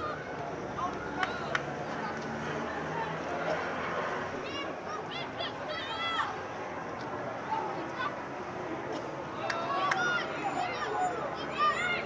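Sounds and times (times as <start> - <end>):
distant people calling out: 9.2 - 12.0.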